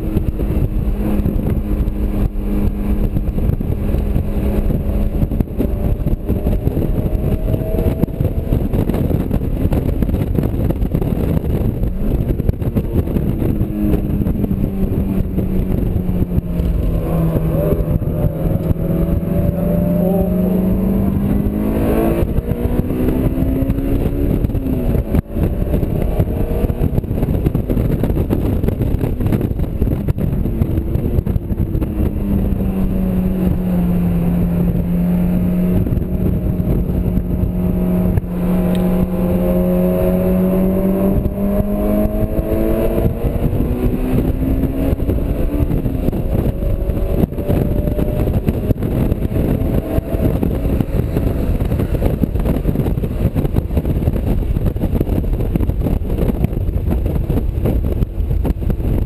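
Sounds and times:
sports car engine revving: 0:00.0 - 0:59.0
wind and road noise: 0:00.0 - 0:59.0.

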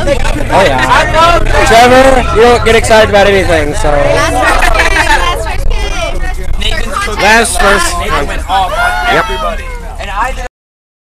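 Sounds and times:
bus engine rumble: 0:00.0 - 0:10.5
voices chattering: 0:00.0 - 0:10.5.

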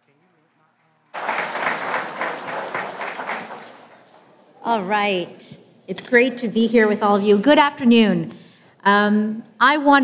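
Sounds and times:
audience applause: 0:01.1 - 0:04.4.

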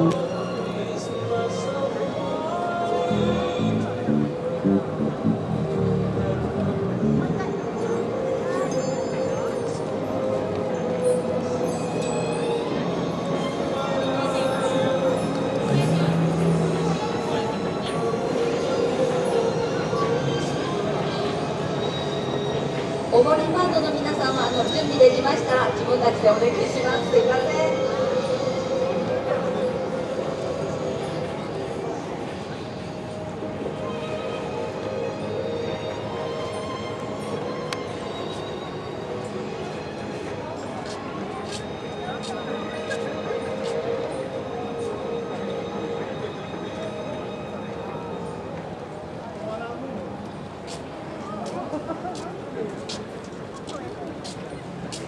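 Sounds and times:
train running past: 0:00.0 - 0:55.0
train rolling rumble with whine: 0:03.0 - 0:08.5.

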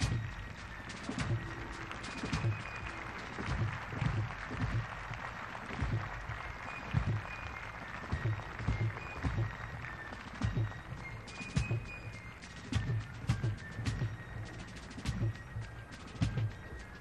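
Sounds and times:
bass drum beats: 0:00.0 - 0:00.5, 0:01.1 - 0:07.4, 0:08.1 - 0:11.9, 0:12.7 - 0:14.3
crowd applauding: 0:00.0 - 0:17.0
fife and drum corps playing: 0:00.0 - 0:17.0.

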